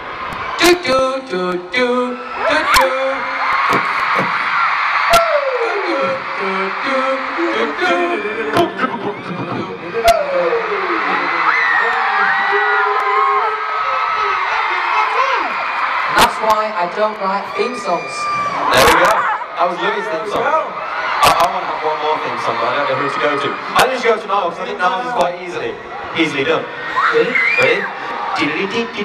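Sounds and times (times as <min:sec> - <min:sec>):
crowd screaming: 0:00.0 - 0:01.0, 0:02.0 - 0:29.0
man singing into microphone: 0:00.6 - 0:03.4, 0:05.1 - 0:14.0.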